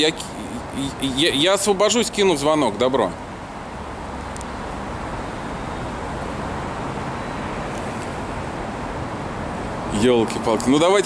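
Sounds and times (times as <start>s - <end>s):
city road traffic rumble: 0.0s - 11.0s.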